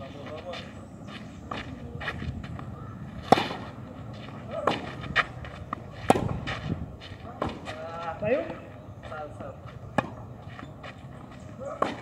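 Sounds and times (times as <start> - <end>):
tennis racket hitting ball: 3.2 - 3.7, 6.0 - 6.4.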